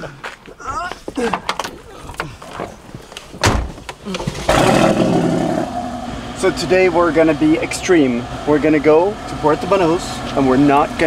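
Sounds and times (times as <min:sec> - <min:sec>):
car engine starting and revving: 0:04.0 - 0:11.0.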